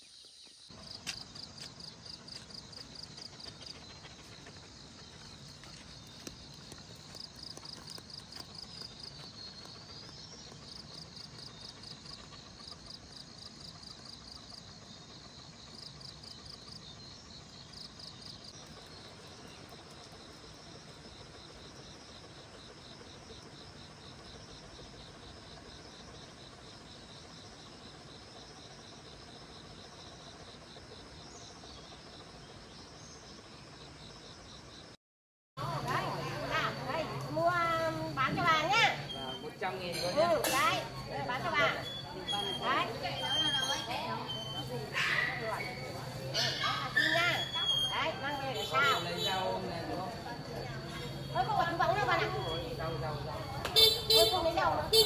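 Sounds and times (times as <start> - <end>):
insects chirping: 0.0 - 35.0, 35.6 - 55.0.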